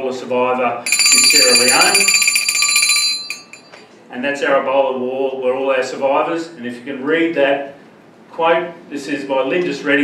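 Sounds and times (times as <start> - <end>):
bell ringing in a fast trill: 0.9 - 3.8.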